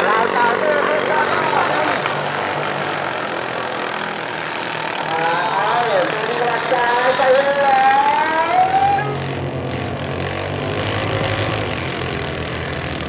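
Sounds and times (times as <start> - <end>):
engine drone: 0.0 - 13.0
person's voice: 5.1 - 9.1.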